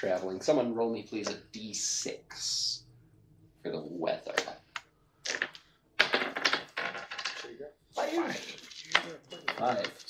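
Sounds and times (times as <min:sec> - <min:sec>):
die rattling on tabletop: 0:05.3 - 0:07.5.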